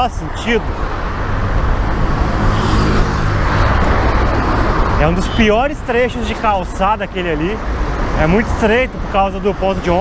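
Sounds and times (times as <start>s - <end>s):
road traffic rumble: 0.0s - 10.0s
vehicle passing: 0.6s - 8.6s.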